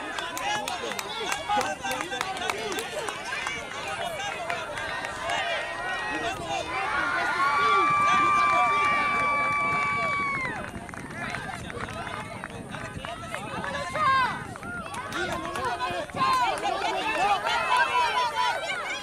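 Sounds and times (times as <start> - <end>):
spectators and players shouting: 0.0 - 11.3, 13.1 - 19.0.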